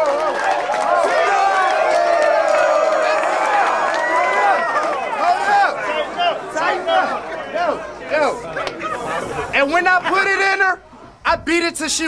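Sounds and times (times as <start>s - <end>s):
crowd chatter: 0.0s - 12.0s
man talking rapidly: 9.4s - 12.0s.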